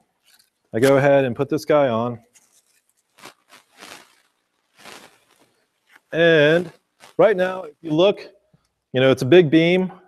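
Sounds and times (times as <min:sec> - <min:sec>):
faint rustling scrapes: 0:02.2 - 0:07.9.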